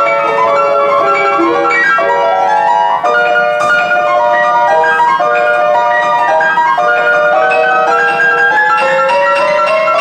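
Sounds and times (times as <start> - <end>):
grand piano playing: 0.0 - 10.0.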